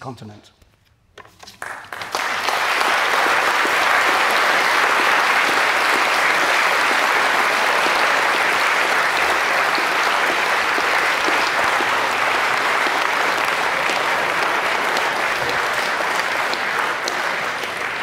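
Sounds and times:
audience applauding: 0:01.5 - 0:18.0.

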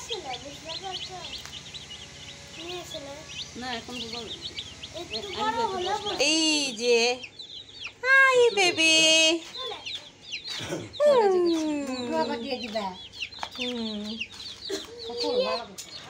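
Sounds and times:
baby chicks peeping: 0:00.0 - 0:16.0.

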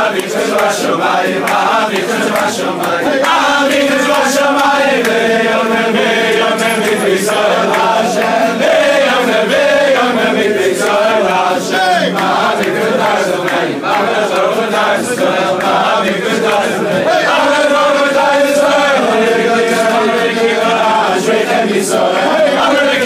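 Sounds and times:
men singing together: 0:00.0 - 0:23.0.

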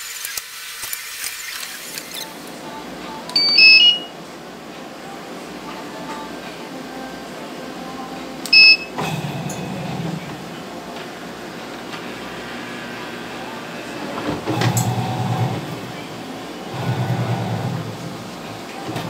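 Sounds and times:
washing machine electrical hum: 0:01.9 - 0:19.0
short electronic beep: 0:03.4 - 0:04.1, 0:08.5 - 0:09.0.

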